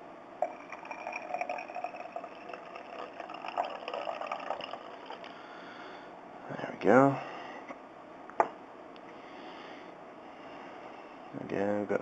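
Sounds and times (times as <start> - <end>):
liquid pouring into glass jar: 0.4 - 5.3.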